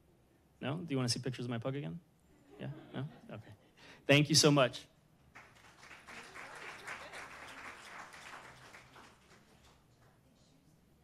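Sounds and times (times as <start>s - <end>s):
audience applauding: 5.3s - 10.1s.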